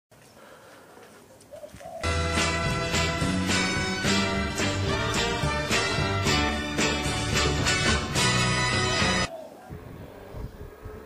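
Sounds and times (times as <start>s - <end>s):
dove cooing: 1.5s - 2.1s, 9.3s - 11.0s.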